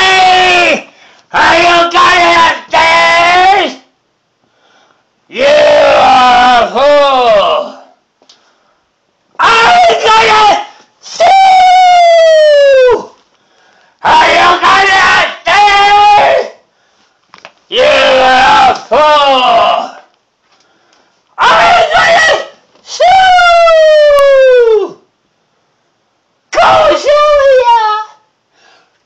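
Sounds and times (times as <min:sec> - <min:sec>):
person screaming: 0:00.0 - 0:03.8, 0:05.3 - 0:08.0, 0:09.4 - 0:13.2, 0:14.0 - 0:16.6, 0:17.7 - 0:20.1, 0:21.4 - 0:25.0, 0:26.6 - 0:28.3.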